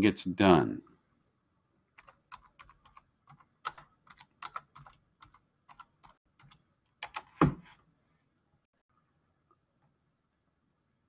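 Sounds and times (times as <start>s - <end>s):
typing on computer keyboard: 2.0s - 7.3s.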